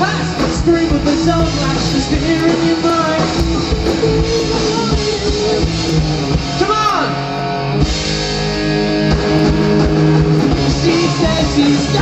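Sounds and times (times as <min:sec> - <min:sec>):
bass and drums: 0:00.0 - 0:12.0
electric guitar: 0:00.0 - 0:12.0.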